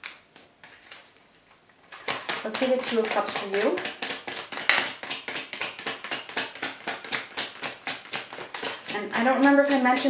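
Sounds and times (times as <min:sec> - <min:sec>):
cards being shuffled by hand: 0:00.0 - 0:10.0.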